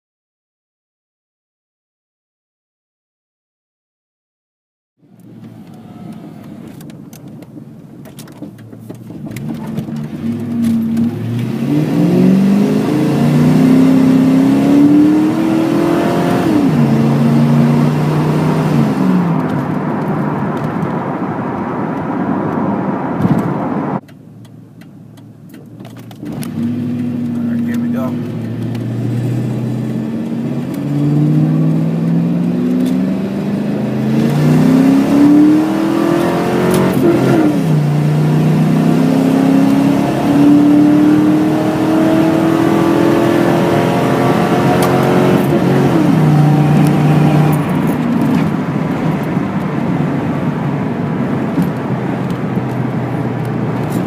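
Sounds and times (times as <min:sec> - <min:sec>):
car engine accelerating through gears: 0:05.0 - 0:54.0.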